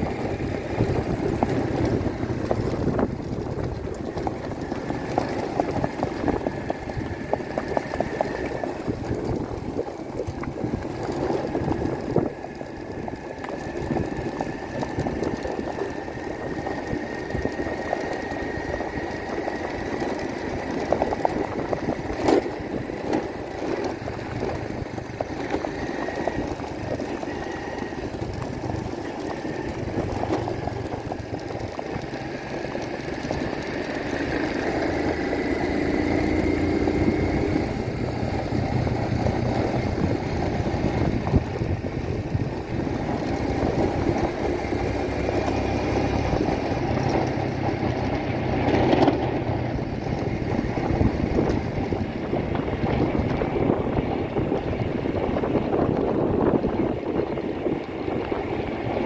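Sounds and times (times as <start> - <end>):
vehicle engine running: 0.0 - 59.0.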